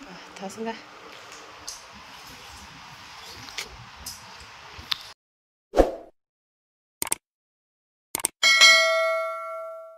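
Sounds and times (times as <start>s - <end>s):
bright bell ding: 8.4s - 9.9s.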